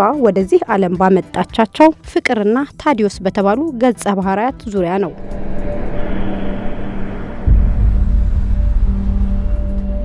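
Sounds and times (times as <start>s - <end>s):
deep rumble: 4.8s - 10.0s
noisy wash: 5.0s - 9.3s
low droning hum: 5.0s - 10.0s.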